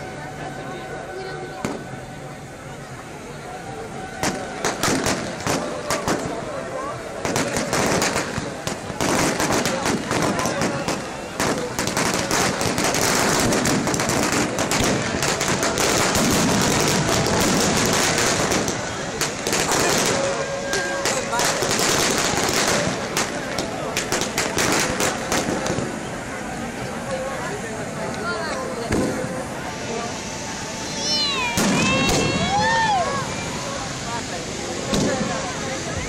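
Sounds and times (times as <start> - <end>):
crowd voices: 0.0 - 36.0
fireworks crackling and popping: 0.9 - 2.8, 4.0 - 36.0
high falling cries: 30.7 - 33.9.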